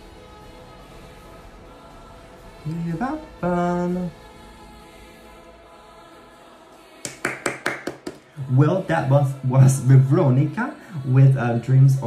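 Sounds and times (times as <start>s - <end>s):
person clapping hands: 7.0s - 8.3s
pop song held note: 7.0s - 11.8s.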